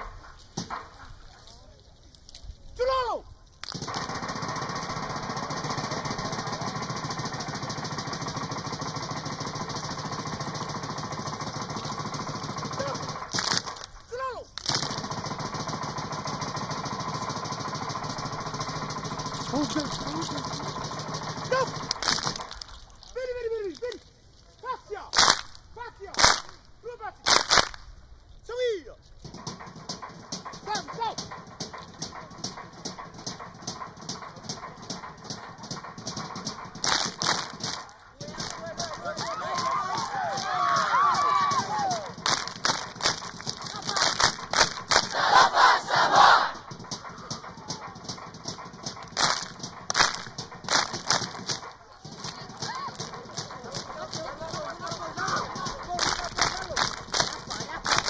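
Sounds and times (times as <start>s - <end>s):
group clapping and slapping: 3.6s - 4.2s, 9.6s - 15.1s, 17.7s - 22.8s, 25.1s - 26.6s, 27.2s - 27.8s, 31.6s - 58.0s
many voices shouting: 38.6s - 42.2s, 45.0s - 48.0s.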